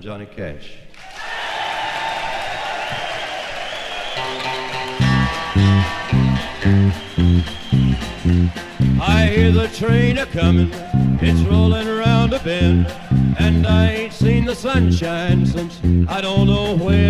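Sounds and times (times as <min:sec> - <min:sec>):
crowd noise: 0:01.2 - 0:17.0
electric bass line: 0:04.2 - 0:17.0
twangy electric guitar: 0:04.2 - 0:17.0.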